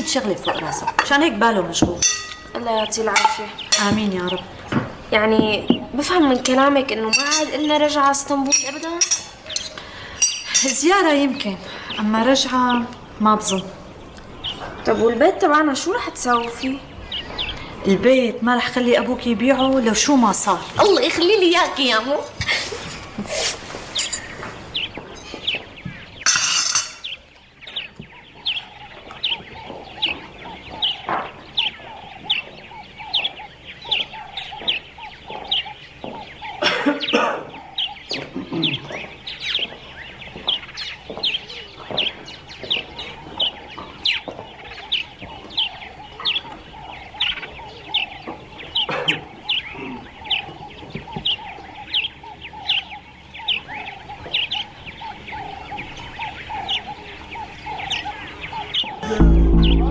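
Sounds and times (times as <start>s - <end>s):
rough bird calls: 0.0s - 18.1s, 18.7s - 59.9s
birds chirping: 0.0s - 59.9s.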